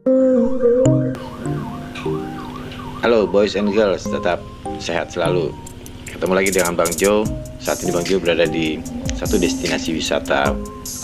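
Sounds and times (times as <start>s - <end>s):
high warbling tone: 0.0s - 11.0s
sustained background music notes: 0.0s - 11.0s.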